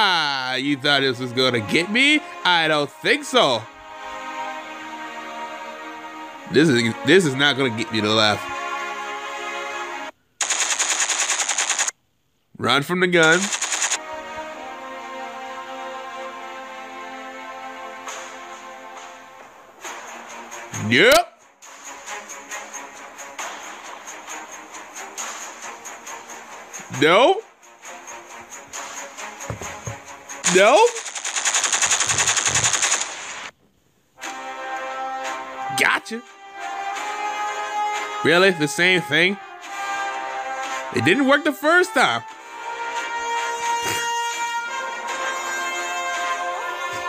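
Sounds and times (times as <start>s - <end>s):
machine-gun fire: 10.4s - 12.0s, 13.2s - 14.0s, 30.4s - 33.5s.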